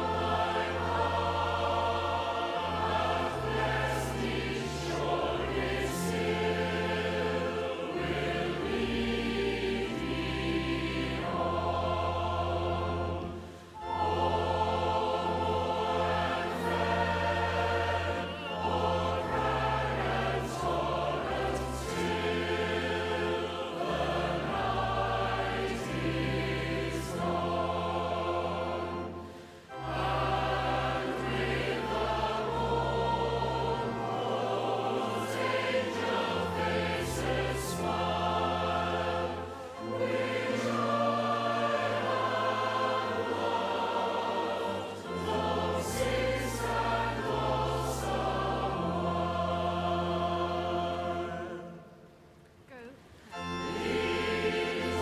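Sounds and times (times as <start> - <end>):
choir singing: 0.0 - 55.0
orchestral strings: 0.0 - 55.0.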